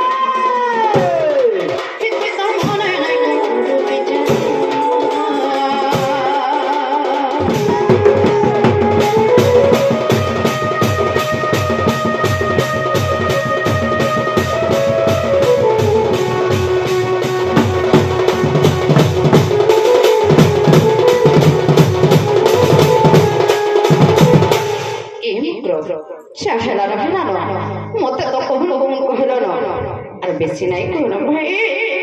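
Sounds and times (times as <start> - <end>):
barrel drum fast beat: 0.0 - 25.2
held melody line: 2.8 - 25.2.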